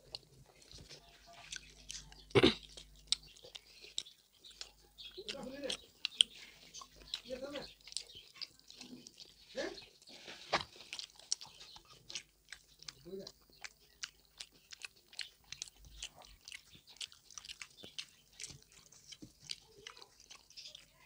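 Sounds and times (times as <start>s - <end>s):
wet chewing mouth smacks: 0.1s - 21.0s.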